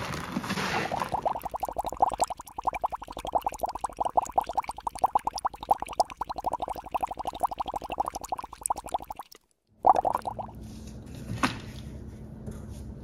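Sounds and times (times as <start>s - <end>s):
fast bubbling plops: 0.7s - 10.6s.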